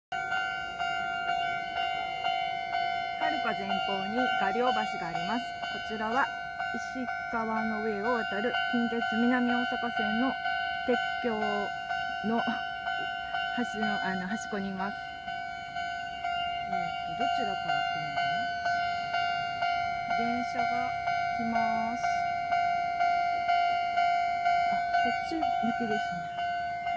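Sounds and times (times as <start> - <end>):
level crossing warning bell: 0.1 - 26.9.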